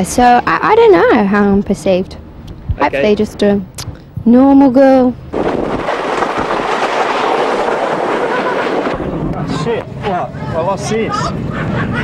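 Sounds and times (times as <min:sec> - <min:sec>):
roller coaster wheels rattling: 0:04.9 - 0:12.0.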